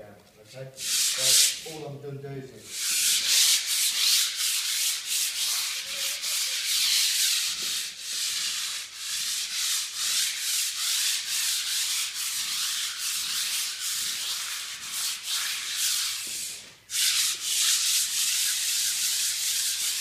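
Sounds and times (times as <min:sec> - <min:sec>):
sandpaper scratching on concrete: 0:00.8 - 0:01.8, 0:02.6 - 0:20.0.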